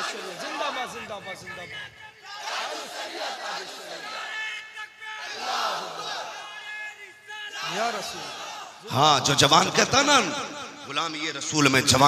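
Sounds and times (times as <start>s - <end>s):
crowd chanting: 0.0s - 9.0s.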